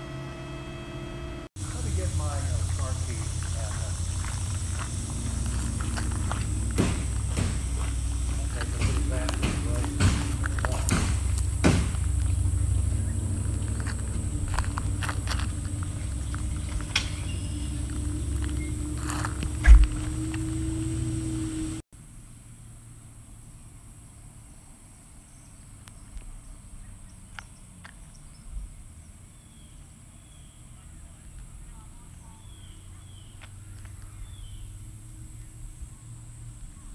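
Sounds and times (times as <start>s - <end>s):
low rumble: 0.0s - 21.8s
footsteps on dirt: 1.6s - 21.2s.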